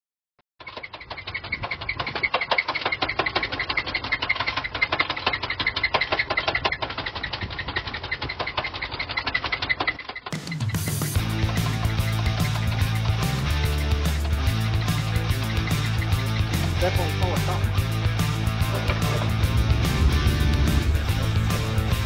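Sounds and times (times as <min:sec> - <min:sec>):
engine knocking rattle: 0:00.6 - 0:22.0.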